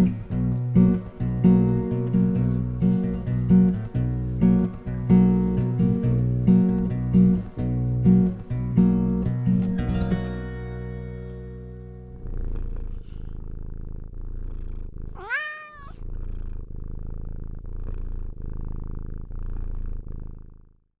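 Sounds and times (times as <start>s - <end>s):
acoustic guitar chord ringing: 0.0s - 12.2s
cat purring: 0.0s - 21.0s
cat meowing: 15.2s - 16.0s.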